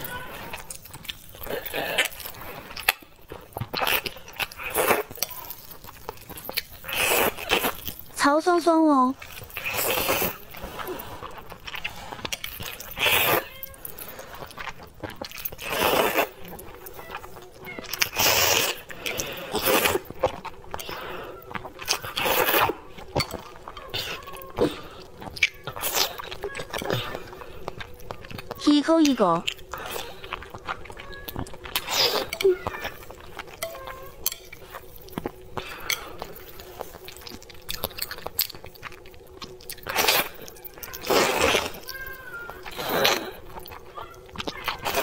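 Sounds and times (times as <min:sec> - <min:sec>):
wet chewing clicks and smacks: 0:00.0 - 0:08.2, 0:09.2 - 0:45.0
noodles slurped: 0:00.0 - 0:08.3, 0:09.2 - 0:45.0.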